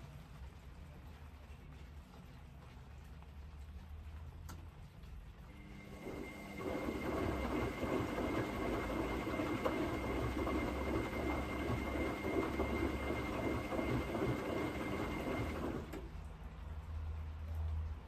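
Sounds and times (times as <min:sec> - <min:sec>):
washing machine motor whine: 0:05.5 - 0:16.0
water sloshing in washing machine: 0:05.5 - 0:16.0.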